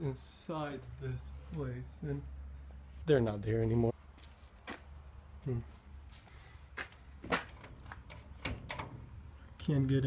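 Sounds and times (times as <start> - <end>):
metal door latch clicking: 7.5 - 9.2.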